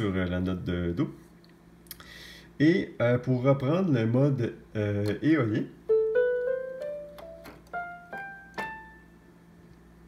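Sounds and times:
electronic keyboard piano notes: 5.8s - 9.4s.

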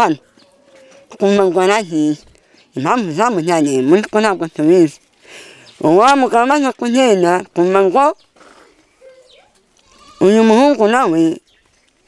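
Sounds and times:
woman speaking: 1.1s - 2.2s, 2.8s - 5.0s, 5.8s - 8.2s, 10.2s - 11.4s.

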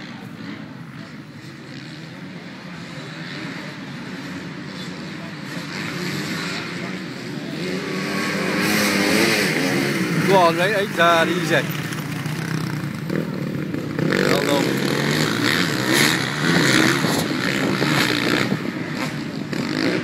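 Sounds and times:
motocross bike engines revving: 0.0s - 20.0s.

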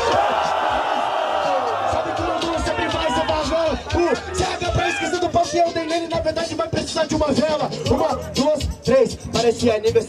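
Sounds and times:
hip-hop beat: 0.0s - 10.0s.

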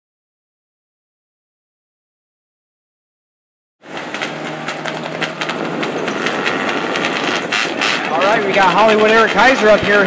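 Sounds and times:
car engines droning: 3.8s - 10.0s.

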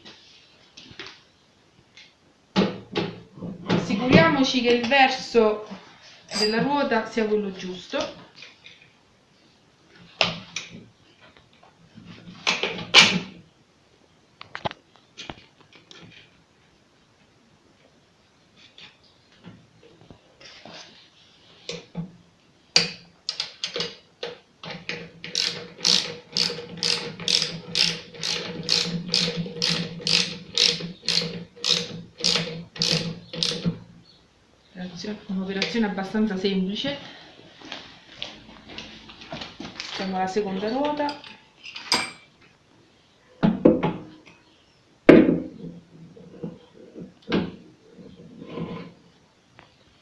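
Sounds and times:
ratchet spanner clicking: 25.3s - 33.6s.

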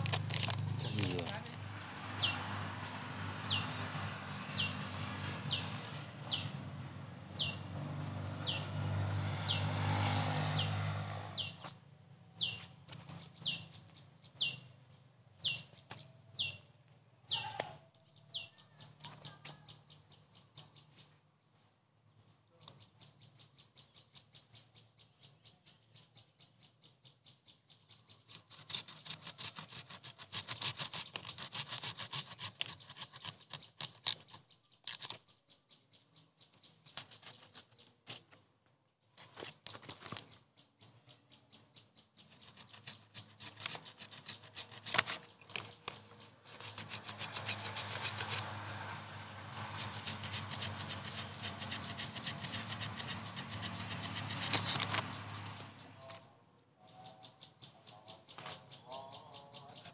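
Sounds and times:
hand saw cutting roots: 0.0s - 11.6s, 28.2s - 35.2s, 36.8s - 38.5s, 42.2s - 55.9s.

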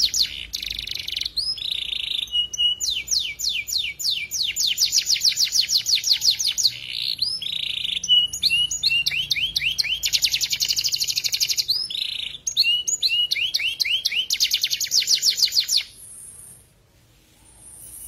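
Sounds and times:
canary singing: 0.0s - 16.8s.

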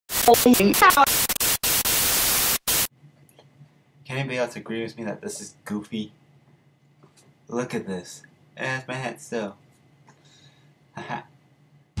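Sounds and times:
white-noise static: 0.1s - 2.9s.

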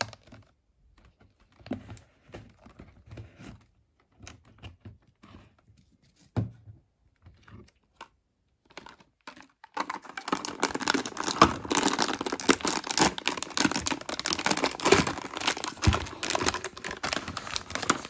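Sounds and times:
plastic wrapper crinkling and tearing: 0.0s - 1.8s, 8.6s - 18.0s.

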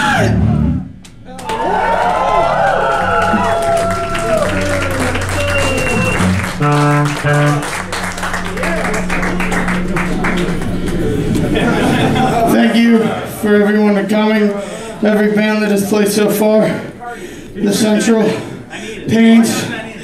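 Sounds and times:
electric guitar feedback: 0.0s - 17.7s
crowd cheering: 1.1s - 18.8s
short instrument notes: 3.9s - 13.9s.

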